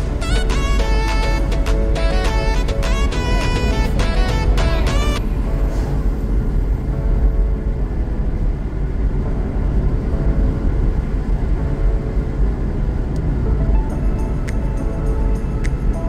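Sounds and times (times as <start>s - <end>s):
background music: 0.0s - 16.0s
car driving on road: 0.0s - 16.0s.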